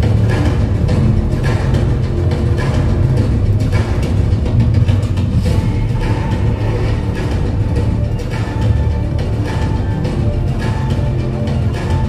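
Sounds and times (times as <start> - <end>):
deep bass rumble soundtrack: 0.0 - 12.0.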